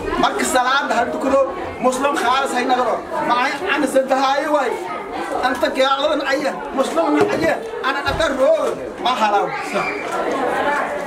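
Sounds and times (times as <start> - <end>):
man talking: 0.0 - 4.8, 5.4 - 10.0
voices chattering: 0.0 - 11.0.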